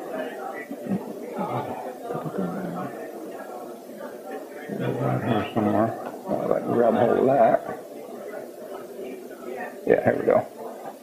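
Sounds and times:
man talking: 0:04.7 - 0:07.8, 0:09.9 - 0:10.5.

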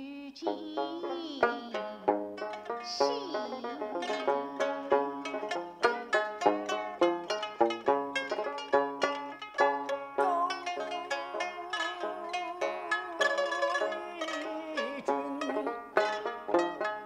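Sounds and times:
plucked string instruments: 0:00.0 - 0:17.0.

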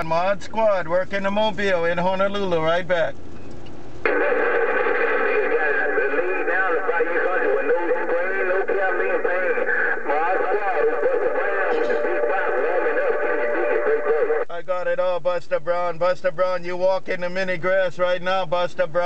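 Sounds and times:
garbled radio voices: 0:04.0 - 0:19.0
steady radio tones: 0:04.0 - 0:19.0.

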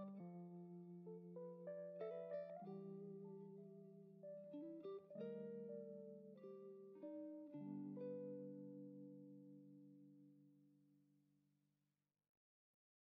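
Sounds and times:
plucked guitar music: 0:00.0 - 0:10.7.

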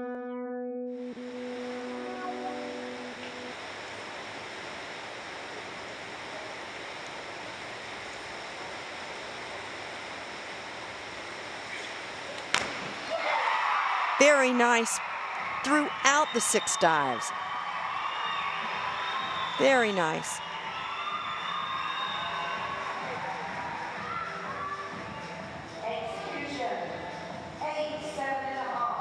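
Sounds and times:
indoor pool hall hiss: 0:01.0 - 0:29.0
crowd noise: 0:14.2 - 0:17.4, 0:19.5 - 0:20.4.

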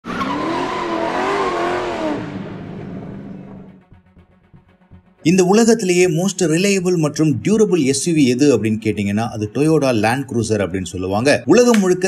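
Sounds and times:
car tyres squealing: 0:00.0 - 0:03.8.

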